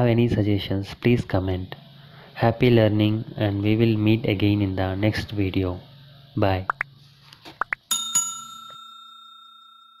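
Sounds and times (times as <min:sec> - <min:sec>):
bell-like notification ding: 0:07.9 - 0:10.0.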